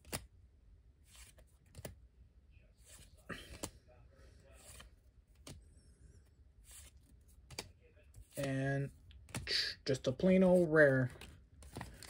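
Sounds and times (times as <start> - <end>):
trading cards sliding: 1.0 - 1.9, 2.8 - 3.7, 4.6 - 5.8, 6.6 - 9.6, 10.4 - 12.0.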